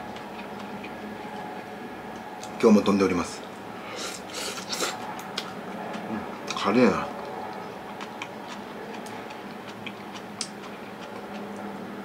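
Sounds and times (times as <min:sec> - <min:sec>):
chewing: 0:00.0 - 0:02.5, 0:04.0 - 0:11.8
faint steady hum: 0:00.0 - 0:12.0.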